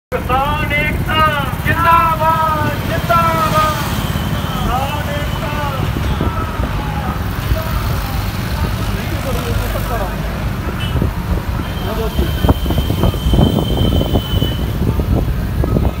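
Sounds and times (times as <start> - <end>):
vehicle engine and road rumble: 0.1 - 16.0.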